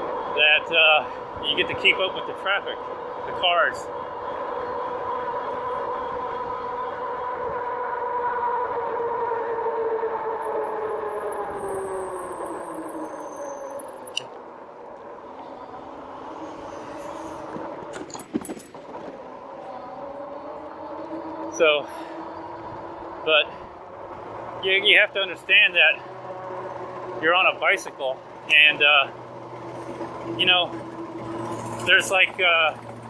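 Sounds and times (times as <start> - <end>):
electric bike motor whine: 4.1 - 14.1.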